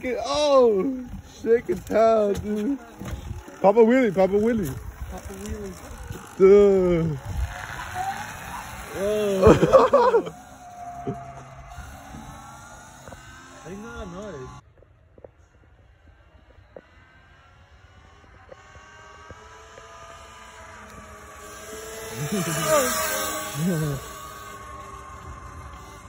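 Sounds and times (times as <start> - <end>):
electric dirt bike motor whining: 0.0 - 26.0.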